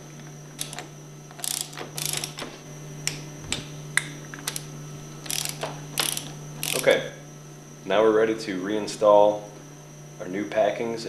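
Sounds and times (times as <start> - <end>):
torque wrench ratcheting clicks: 0.6 - 2.5, 4.5 - 7.0.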